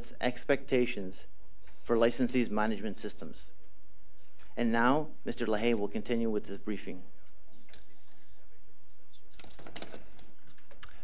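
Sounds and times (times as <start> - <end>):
microphone handling clicks and rustles: 7.2 - 11.0.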